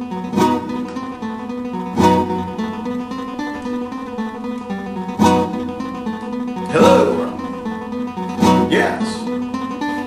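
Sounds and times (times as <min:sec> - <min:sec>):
classical guitar chords: 0:00.0 - 0:10.0.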